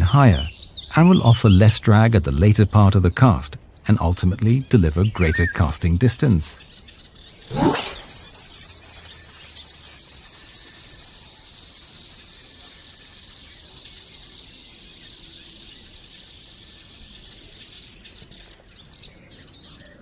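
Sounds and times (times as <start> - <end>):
fishing line hissing off reel: 7.5 - 14.2.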